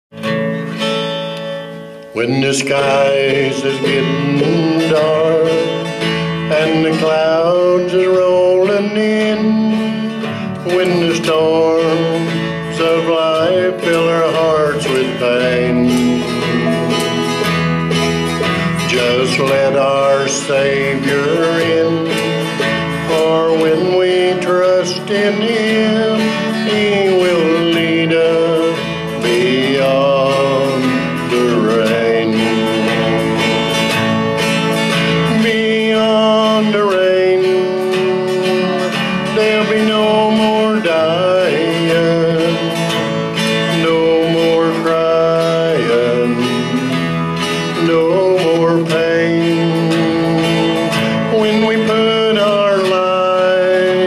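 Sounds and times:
country gospel band music: 0:00.1 - 0:54.0.

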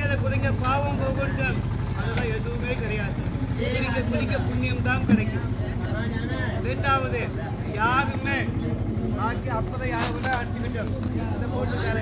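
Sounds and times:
motorboat engine drone: 0:00.0 - 0:12.0
people talking: 0:00.0 - 0:12.0.

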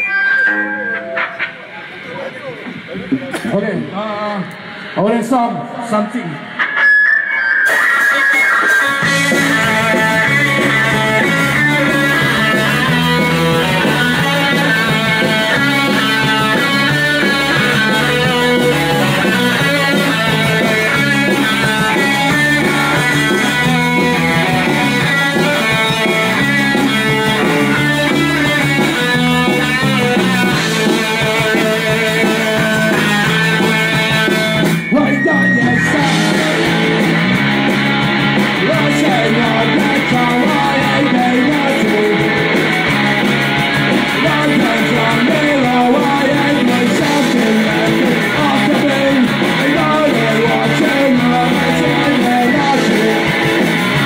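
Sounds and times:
bass guitar: 0:00.0 - 0:54.0
loud electric guitar: 0:00.0 - 0:54.0
punk band playing: 0:00.0 - 0:54.0.

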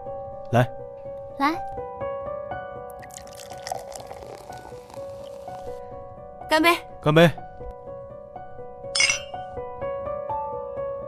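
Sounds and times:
soft background music: 0:00.0 - 0:11.0
drinking glasses clinking: 0:03.0 - 0:04.5, 0:09.0 - 0:09.5.

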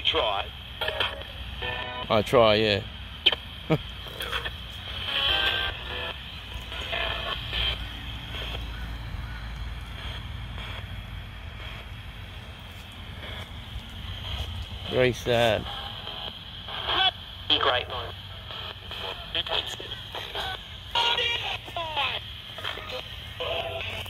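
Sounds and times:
chopped broadcast music: 0:00.0 - 0:24.0
chopped broadcast voices: 0:00.0 - 0:24.0
radio static hiss: 0:00.0 - 0:24.0.

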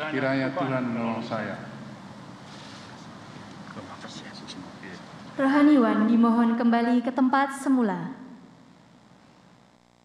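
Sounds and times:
announcement echoing in a hall: 0:00.0 - 0:02.1, 0:05.4 - 0:08.6
faint steady hum: 0:00.0 - 0:10.0.

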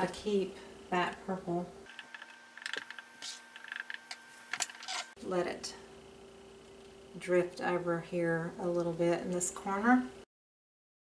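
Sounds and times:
faint steady hum: 0:00.0 - 0:10.3.

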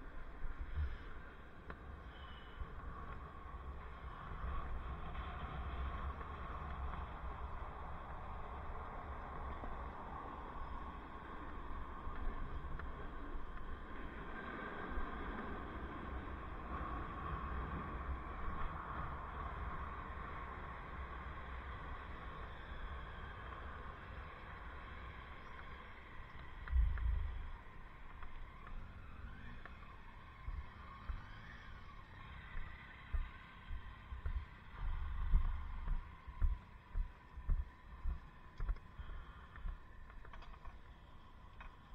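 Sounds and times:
wind rumbling on microphone: 0:00.0 - 0:40.9
street traffic: 0:00.0 - 0:41.9.

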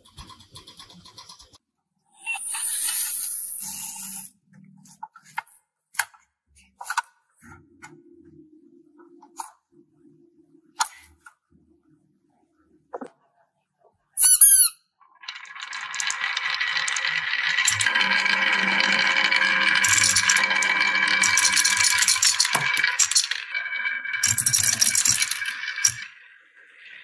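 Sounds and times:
marbles rolling down wooden track: 0:15.1 - 0:26.2
marbles clicking against wood: 0:15.2 - 0:23.4, 0:24.2 - 0:26.1.

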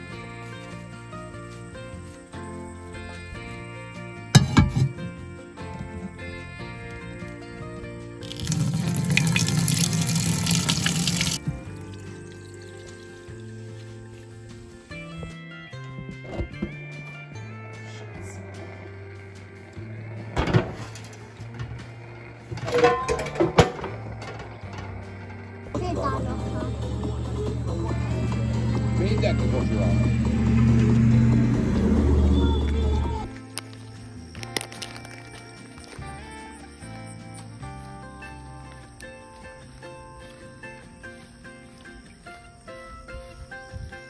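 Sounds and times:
background music: 0:00.0 - 0:44.0
water pouring into a metal pot: 0:08.2 - 0:13.1.

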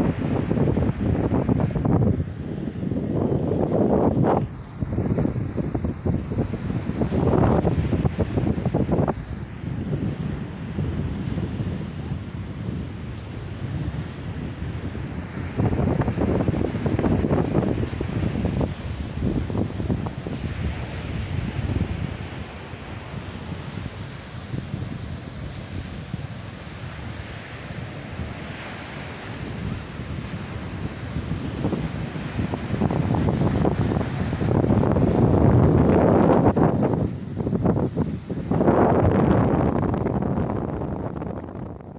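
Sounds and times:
sea waves breaking on beach: 0:00.0 - 0:41.9
wind buffeting microphone: 0:00.0 - 0:41.9.

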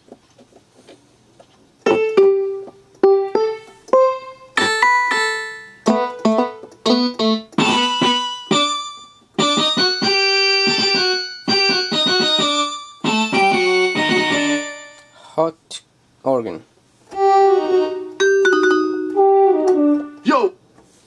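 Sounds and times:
keyboard melody: 0:01.8 - 0:15.2, 0:17.1 - 0:20.3.

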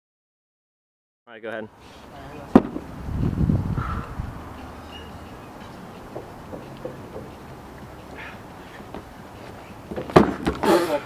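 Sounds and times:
low rumbling noise: 0:02.7 - 0:05.3.

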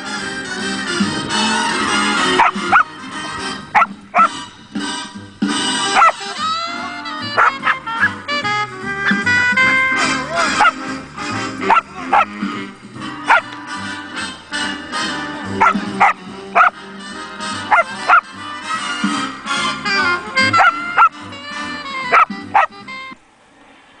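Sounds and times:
song with steady bass line: 0:00.0 - 0:23.2
dog barking: 0:02.4 - 0:02.9, 0:03.8 - 0:04.3, 0:06.0 - 0:06.2, 0:07.4 - 0:08.2, 0:10.5 - 0:10.8, 0:11.7 - 0:12.3, 0:13.3 - 0:13.5, 0:15.6 - 0:16.8, 0:17.7 - 0:18.2, 0:20.5 - 0:21.1, 0:22.1 - 0:22.7.

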